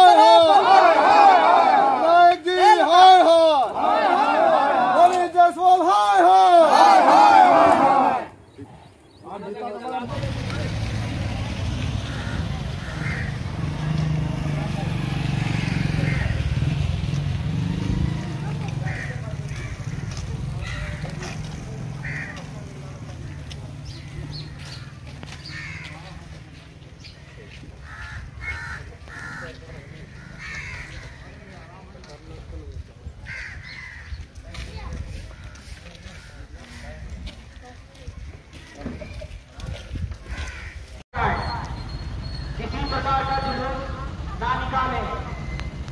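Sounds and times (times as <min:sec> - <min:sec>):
crow cawing: 0:12.1 - 0:13.5, 0:15.6 - 0:16.5, 0:18.8 - 0:21.2, 0:22.0 - 0:22.4, 0:25.4 - 0:26.0, 0:27.8 - 0:31.3, 0:33.2 - 0:34.2, 0:40.3 - 0:40.8.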